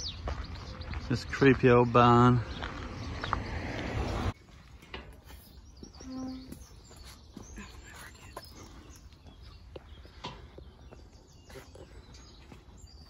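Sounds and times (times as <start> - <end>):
faint birds chirping: 0.0 - 13.0.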